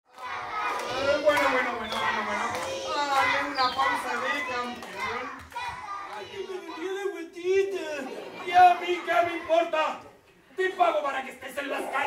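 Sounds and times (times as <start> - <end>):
children chattering and calling out: 0.1 - 12.0.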